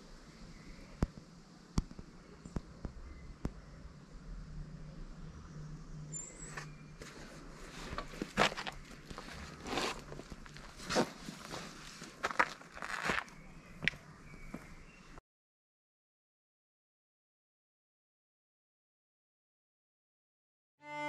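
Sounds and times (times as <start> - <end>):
backpack being lifted: 6.6 - 12.2
clothing rustling: 7.0 - 13.3
footsteps on dirt and stone: 7.0 - 14.8.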